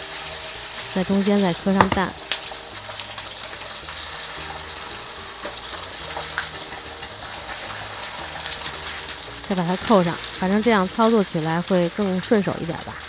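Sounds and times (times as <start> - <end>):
eggs sizzling in oil: 0.0 - 13.0.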